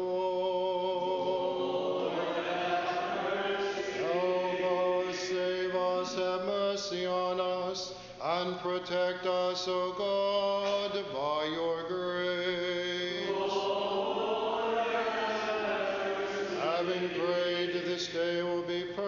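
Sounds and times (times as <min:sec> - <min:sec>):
group chanting unaccompanied: 0:00.2 - 0:06.6, 0:12.7 - 0:18.5.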